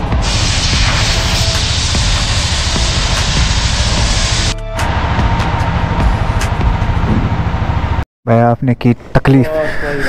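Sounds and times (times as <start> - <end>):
machine rumble and hiss: 0.0 - 4.6.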